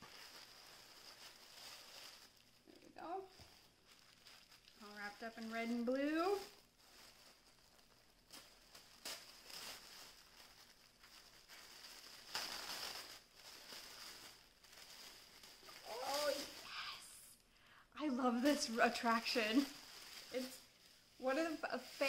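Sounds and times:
wrapping paper rustling: 0.0s - 17.0s, 18.2s - 22.0s.

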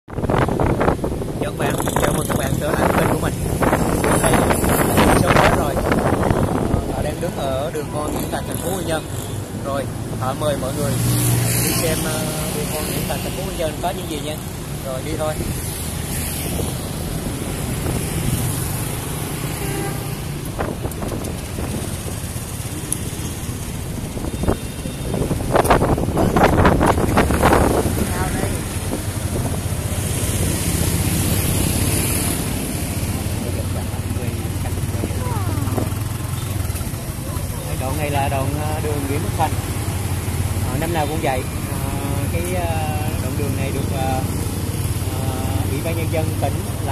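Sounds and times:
motorbikes passing: 0.1s - 46.9s
people's voices: 26.1s - 29.6s, 32.4s - 39.8s.

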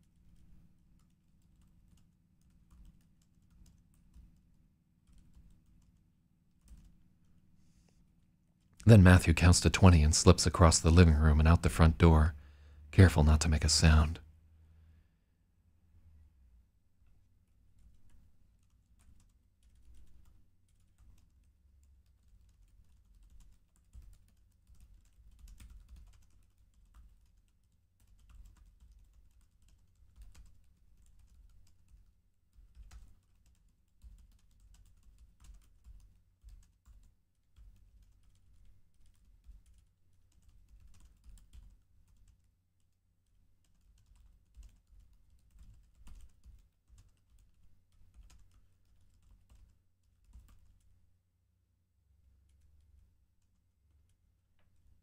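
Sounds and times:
typing on computer keyboard: 0.0s - 7.0s, 17.8s - 50.9s.

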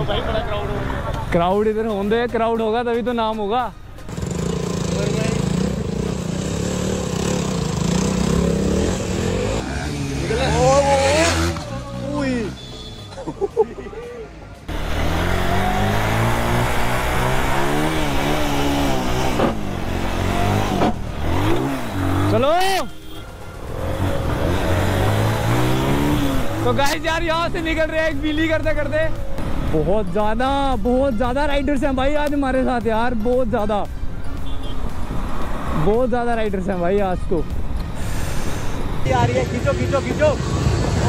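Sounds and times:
motorcycle engines revving: 4.0s - 12.9s, 14.7s - 30.4s.

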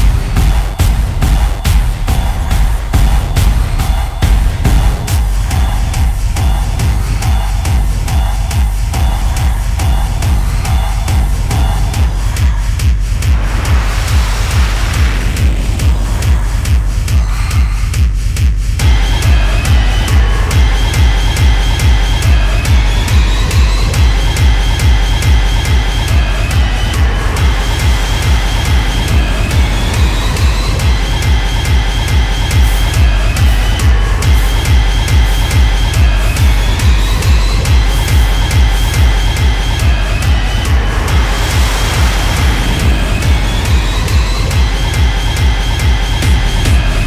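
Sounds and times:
high synth riff: 0.0s - 12.4s, 18.8s - 47.0s
noise sweep: 0.0s - 47.0s
techno kick drum: 0.0s - 47.0s.

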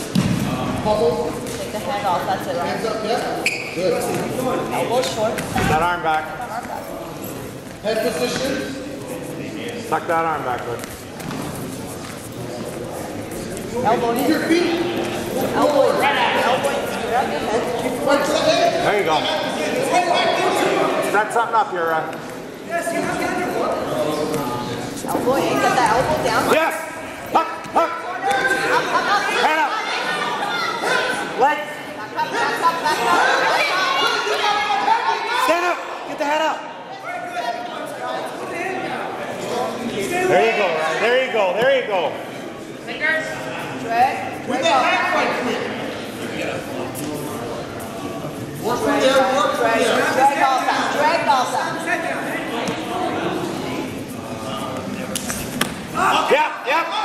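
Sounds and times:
voices shouting in a gym hall: 0.0s - 57.0s
shoe squeaks: 3.3s - 4.2s.

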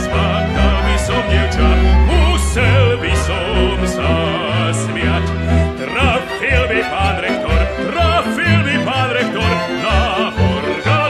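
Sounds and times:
low bass notes: 0.0s - 5.9s
violin melody with vibrato: 0.0s - 11.0s.

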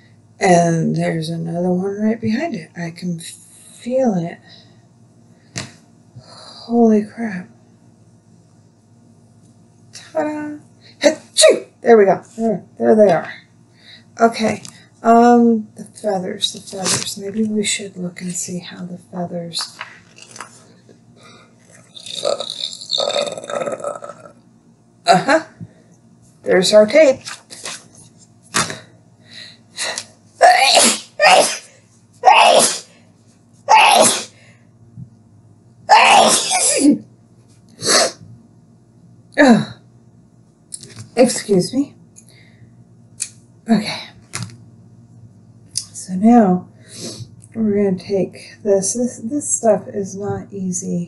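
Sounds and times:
woman speaking: 0.4s - 4.6s, 6.3s - 7.6s, 10.0s - 19.8s, 26.4s - 27.7s, 36.0s - 37.1s, 41.1s - 42.0s, 43.6s - 44.2s, 45.8s - 46.8s, 47.5s - 51.0s
woman sneezing: 29.8s - 32.9s, 33.7s - 34.4s, 35.9s - 37.0s, 37.8s - 38.2s.

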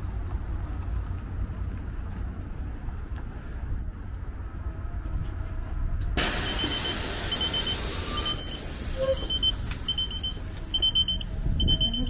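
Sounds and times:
bus engine rumble: 0.0s - 12.0s
bus air brake hiss: 6.2s - 10.7s
high warning beeps: 6.4s - 12.0s.

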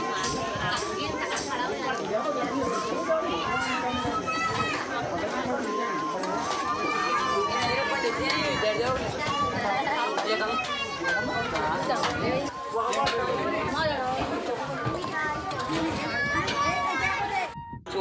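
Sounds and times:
overlapping chatter: 0.0s - 18.0s.

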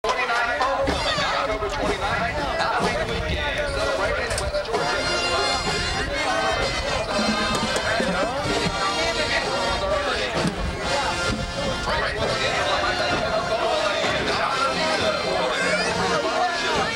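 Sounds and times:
crowd talking: 0.0s - 16.9s
marching band brass and drums: 4.7s - 16.9s.

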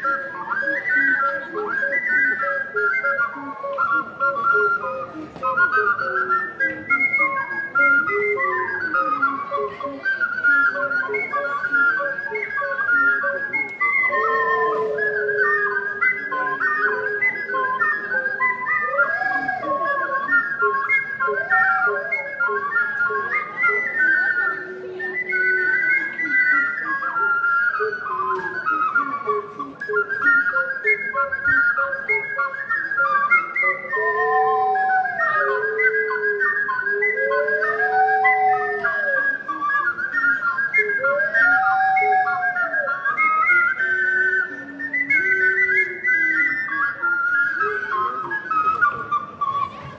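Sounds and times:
ocarina ensemble playing: 0.0s - 49.9s.

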